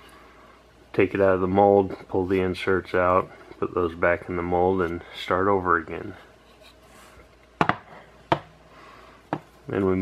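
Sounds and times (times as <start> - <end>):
plastic parts knocking on workbench: 7.6 - 8.6.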